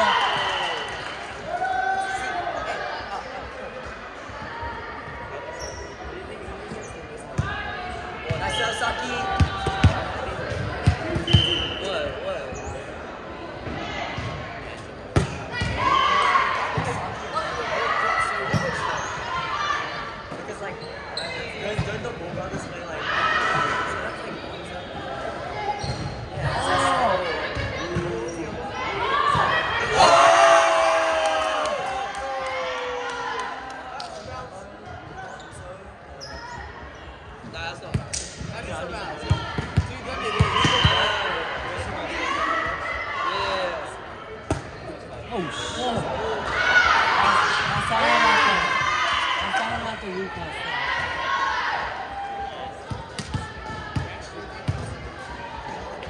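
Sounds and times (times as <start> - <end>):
voices calling out in gym: 0.0 - 56.0.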